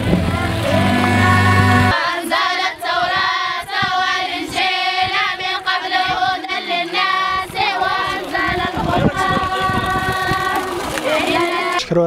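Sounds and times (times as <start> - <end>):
girls chanting in unison: 1.0 - 11.8.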